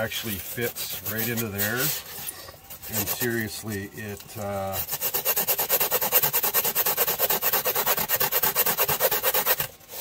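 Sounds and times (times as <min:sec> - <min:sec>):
sanding disc rubbing foam: 0:00.0 - 0:10.0.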